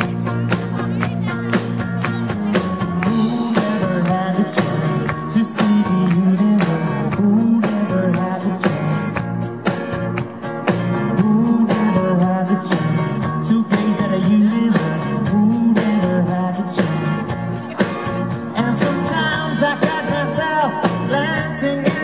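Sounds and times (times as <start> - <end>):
bass line: 0.0 - 22.0
drums keeping a steady beat: 0.0 - 22.0
electric guitars: 0.0 - 22.0
man singing: 2.2 - 9.4, 10.9 - 22.0.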